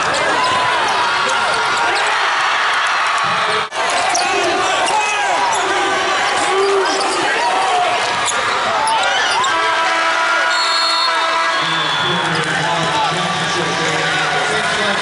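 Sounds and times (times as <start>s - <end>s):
crowd voices in arena: 0.0s - 15.0s
buzzer horn: 10.5s - 11.4s.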